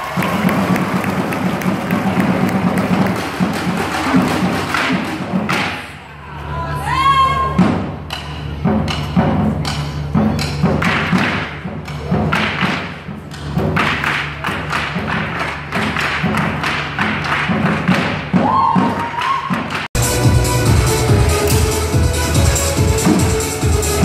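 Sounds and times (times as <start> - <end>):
drums in fast driving rhythm: 19.9 - 24.0
electronic dance music: 20.0 - 24.0
loud backing music: 20.0 - 24.0.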